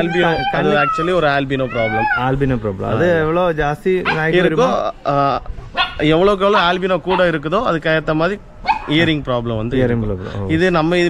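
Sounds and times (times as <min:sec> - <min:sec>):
man talking: 0:00.0 - 0:11.0
dog barking: 0:04.0 - 0:04.8, 0:05.7 - 0:07.4, 0:08.6 - 0:09.0.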